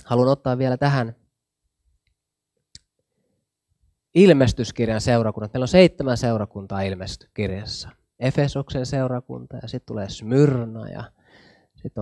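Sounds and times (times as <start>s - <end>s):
man speaking: 0.0s - 1.2s, 4.2s - 11.1s.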